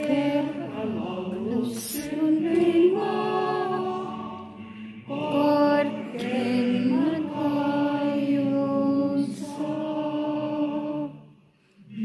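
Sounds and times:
group singing slow held notes: 0.0s - 12.0s.

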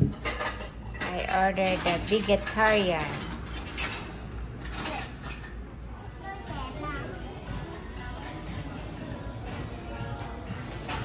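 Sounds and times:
low room rumble: 0.0s - 11.0s.

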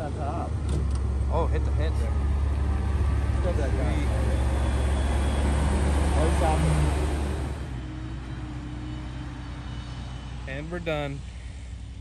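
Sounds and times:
forage harvester engine humming: 0.0s - 12.0s.

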